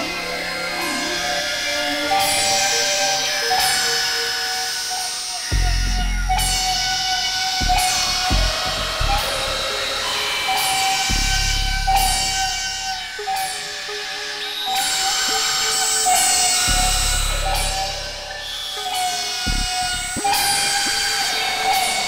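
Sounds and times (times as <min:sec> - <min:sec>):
synthesizer drone tones: 0:00.0 - 0:22.0
deep bass hits: 0:07.6 - 0:09.3.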